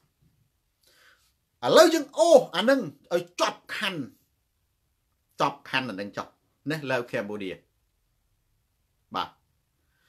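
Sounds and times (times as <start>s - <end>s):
man speaking: 1.6s - 4.2s, 5.3s - 7.7s, 9.1s - 9.4s.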